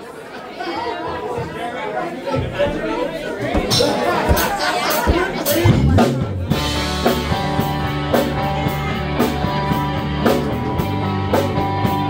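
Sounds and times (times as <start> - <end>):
voices chattering: 0.0 - 12.0
rock band bass and drums: 3.5 - 12.0.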